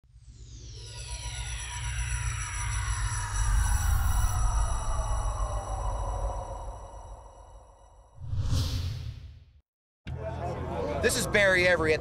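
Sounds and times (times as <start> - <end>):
low rumble: 0.2 - 9.4.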